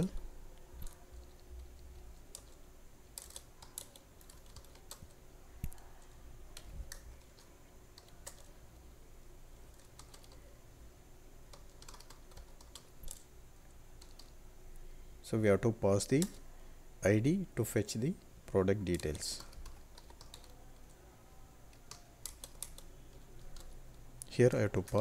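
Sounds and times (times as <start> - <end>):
faint keyboard typing: 0.0 - 8.8, 9.6 - 10.6, 11.4 - 14.9, 16.0 - 16.4, 18.0 - 25.0.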